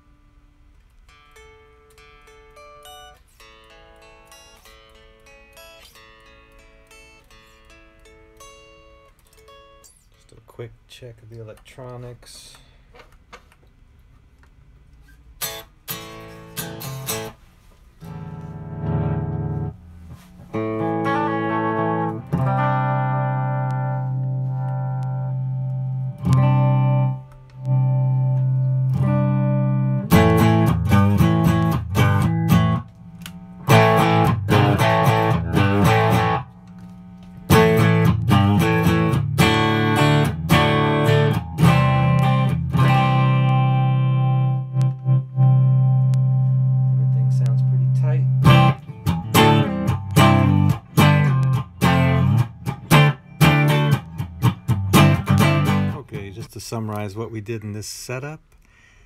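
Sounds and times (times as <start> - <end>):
amplified electric guitar: 0.8 - 10.2, 15.4 - 17.4, 18.0 - 57.0.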